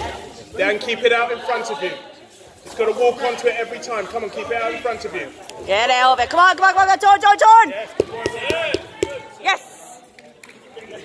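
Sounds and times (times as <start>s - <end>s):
large hall background noise: 0.0s - 11.0s.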